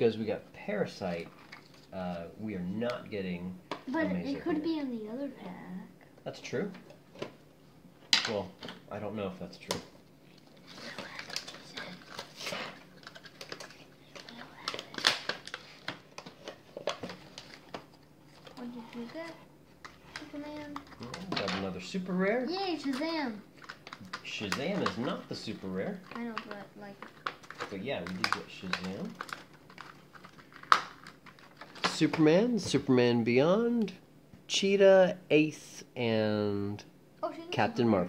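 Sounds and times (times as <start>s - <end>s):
plastic bags rustling: 10.4s - 21.7s, 23.5s - 32.0s.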